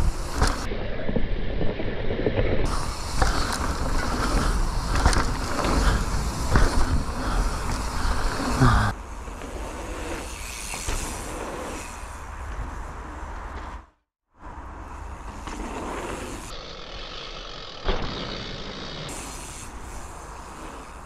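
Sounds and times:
bike knocking and rattling: 0.0s - 0.7s, 2.6s - 11.5s
bike tyres on dirt: 0.0s - 21.0s.

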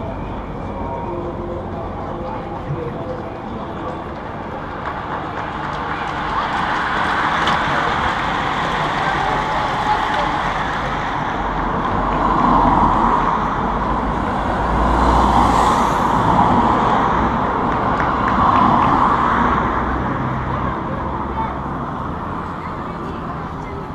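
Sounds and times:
street noise: 0.0s - 23.9s.

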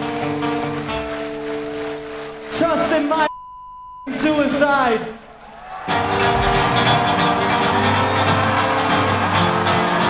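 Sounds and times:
pounding drums: 6.0s - 8.2s
bass: 6.0s - 10.0s.

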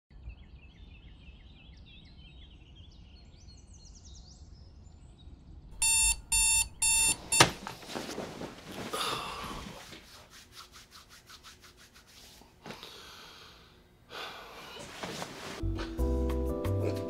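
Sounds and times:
digital alarm clock beeping: 5.8s - 7.5s.

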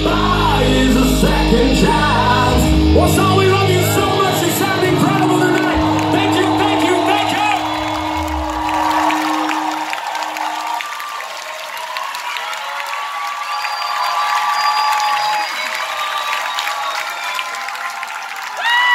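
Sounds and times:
rock band held note: 2.4s - 10.7s
crowd clapping and cheering: 3.2s - 18.9s
shouts and whistles: 4.9s - 18.9s.

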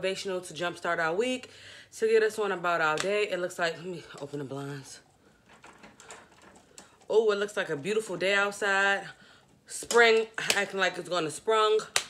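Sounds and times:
window blind slats clicking and rattling: 5.4s - 6.9s.

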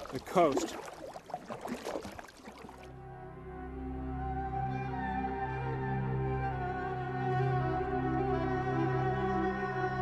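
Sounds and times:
paddle splashing water: 0.0s - 2.9s
orchestral string music: 2.9s - 10.0s.

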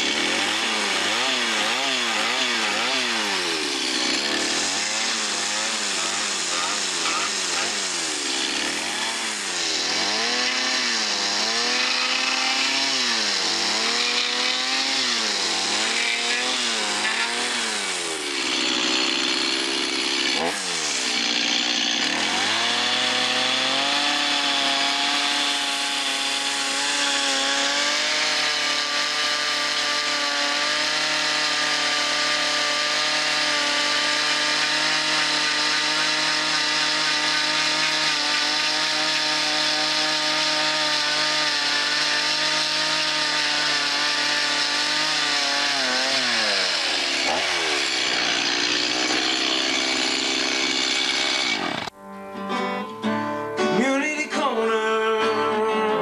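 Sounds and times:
chainsaw cutting wood: 0.0s - 52.0s.

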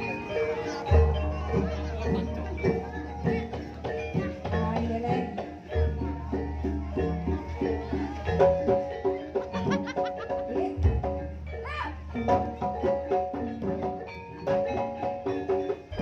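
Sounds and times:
drums and pitched percussion ensemble: 0.0s - 16.0s.

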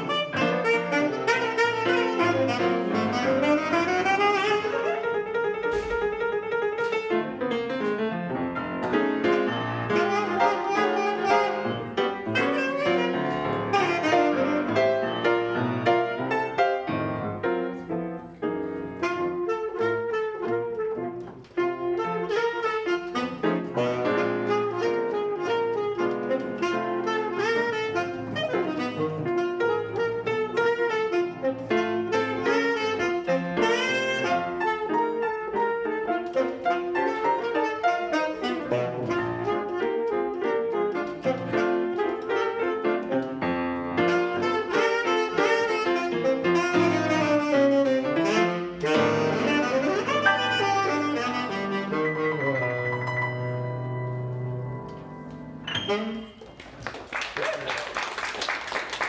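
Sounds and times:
piano chords: 0.0s - 56.7s
tenor saxophone melody: 0.0s - 56.7s.

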